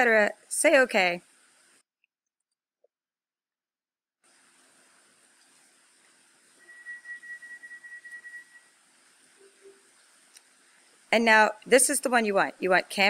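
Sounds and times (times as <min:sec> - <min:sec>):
background hiss: 0:00.0 - 0:01.8, 0:04.2 - 0:13.0.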